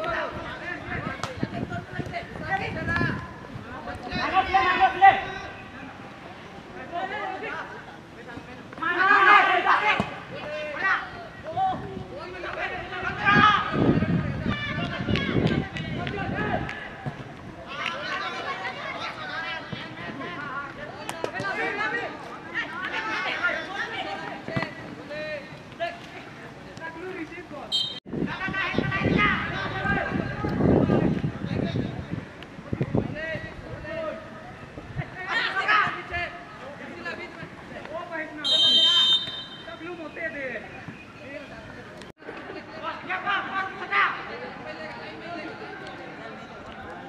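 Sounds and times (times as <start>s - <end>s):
boys calling and shouting: 0.0s - 47.0s
referee's whistle blast: 27.7s - 28.0s, 38.4s - 39.8s.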